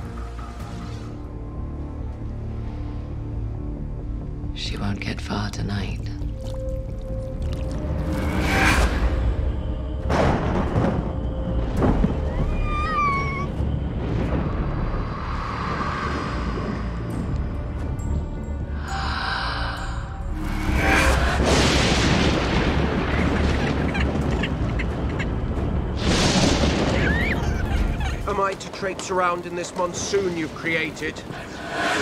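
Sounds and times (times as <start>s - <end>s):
dark dramatic score: 0.0s - 32.0s
storm-like noise rushes: 8.0s - 17.6s, 20.3s - 32.0s.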